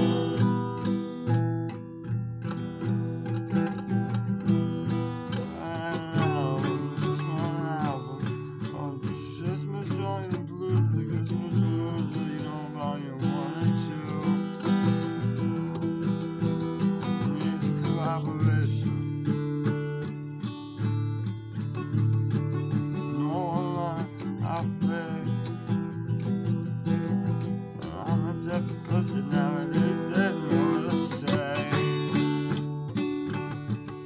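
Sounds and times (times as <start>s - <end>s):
acoustic guitar strummed and picked: 0.0s - 34.0s.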